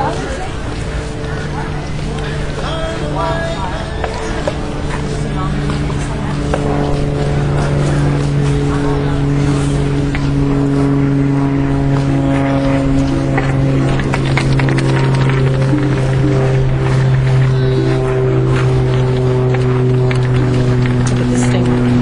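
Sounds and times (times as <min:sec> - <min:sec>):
indistinct voices: 0:00.0 - 0:22.0
low droning hum: 0:00.0 - 0:22.0
scattered clicks: 0:12.4 - 0:22.0.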